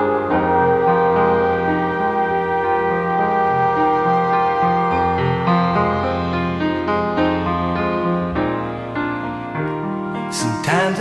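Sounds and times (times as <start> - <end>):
sustained tones: 0.0 - 9.9
piano chords: 0.0 - 11.0.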